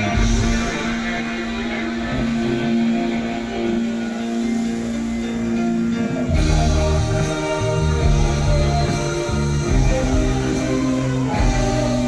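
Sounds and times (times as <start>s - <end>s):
guitar-led music: 0.0s - 12.0s
heavy bass line: 0.0s - 12.0s.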